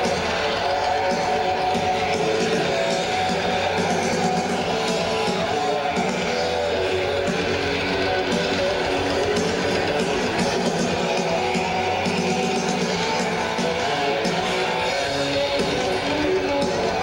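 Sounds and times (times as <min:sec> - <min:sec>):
heavy metal band playing live: 0:00.0 - 0:17.0.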